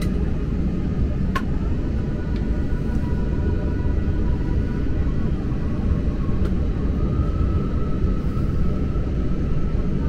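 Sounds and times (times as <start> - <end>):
jet engine rumble: 0.0 - 10.0.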